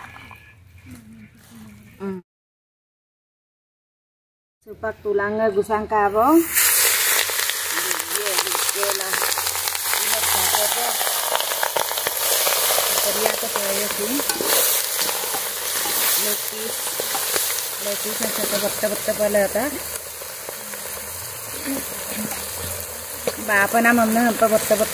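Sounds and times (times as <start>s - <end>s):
chicken sizzling in hot oil: 6.4s - 24.9s
stirring scraping a wok: 9.1s - 19.2s, 19.9s - 24.8s.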